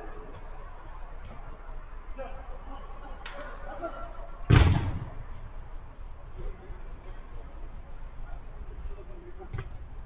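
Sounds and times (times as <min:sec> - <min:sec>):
football being struck: 0:04.5 - 0:05.1.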